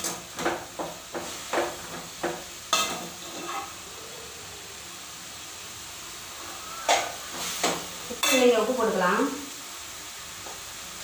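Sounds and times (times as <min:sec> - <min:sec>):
food sizzling in a pan: 0:00.0 - 0:11.0
spatula scraping steel pan: 0:02.8 - 0:03.8.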